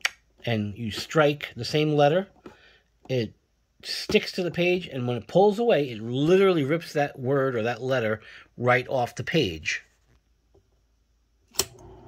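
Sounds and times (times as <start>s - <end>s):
typewriter power switch click: 11.5s - 12.0s.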